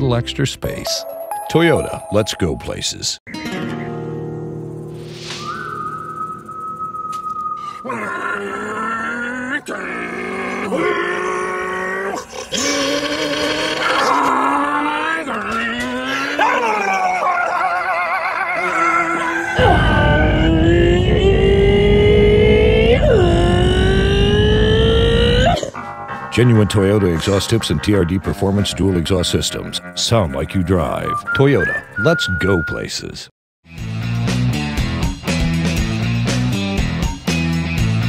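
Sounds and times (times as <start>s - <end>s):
low steady rumble: 19.6s - 25.6s.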